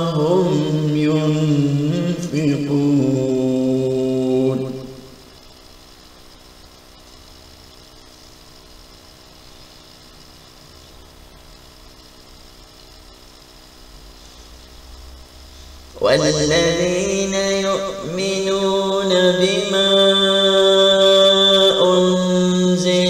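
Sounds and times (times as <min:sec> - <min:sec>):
man chanting: 0:00.0 - 0:05.1, 0:16.0 - 0:23.0
faint hum with held tones: 0:00.0 - 0:23.0.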